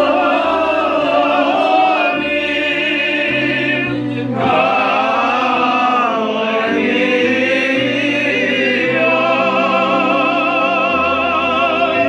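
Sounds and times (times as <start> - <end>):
men singing together: 0.0 - 12.0.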